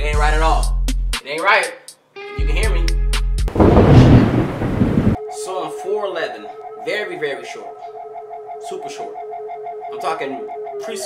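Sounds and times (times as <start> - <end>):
thunder rumble: 3.5 - 5.2.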